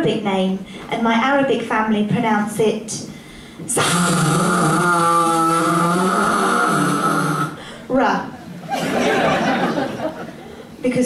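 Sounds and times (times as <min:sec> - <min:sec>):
woman's rasping throaty sound: 0:03.7 - 0:07.6.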